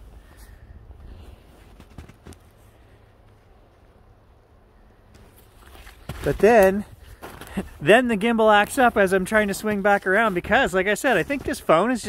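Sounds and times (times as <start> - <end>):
footsteps crunching through snow: 5.2 - 12.0.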